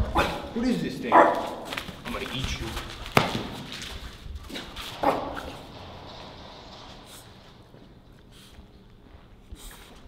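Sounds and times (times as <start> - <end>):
puppy barking: 1.1 - 1.7, 5.0 - 5.5.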